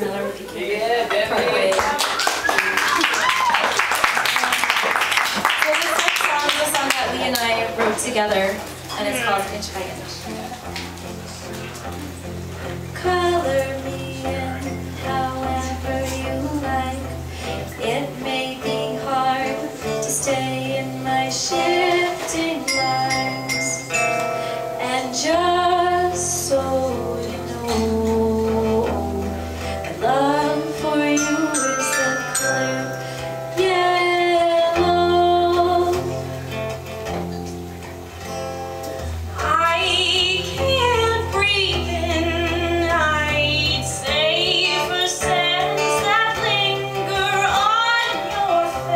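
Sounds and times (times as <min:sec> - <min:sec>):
acoustic guitar: 0:00.0 - 0:48.9
woman singing: 0:12.9 - 0:23.9, 0:24.8 - 0:36.3, 0:39.4 - 0:48.9
mallet keyboard bell-like notes: 0:22.7 - 0:24.7, 0:31.1 - 0:33.8.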